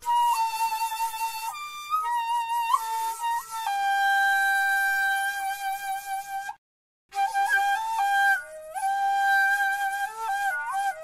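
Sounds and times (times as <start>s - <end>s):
bamboo flute long note: 0.0s - 11.0s.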